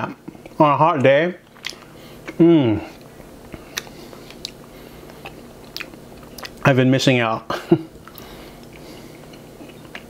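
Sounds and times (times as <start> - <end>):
person chewing: 1.4 - 6.7, 8.0 - 10.0.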